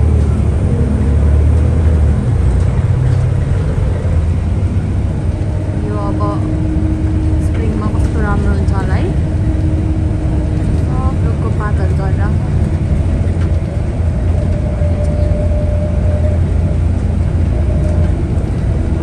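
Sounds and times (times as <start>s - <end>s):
bus engine drone and road noise: 0.0s - 19.0s.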